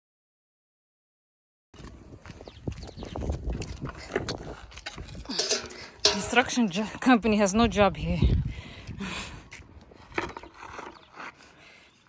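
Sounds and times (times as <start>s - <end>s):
footsteps in sandals on sand: 1.8s - 5.4s
bucket of water knocking: 5.4s - 6.7s.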